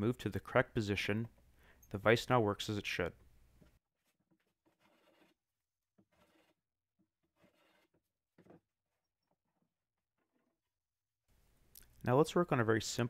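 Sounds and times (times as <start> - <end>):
hand plane shaving wood: 4.0 - 10.8.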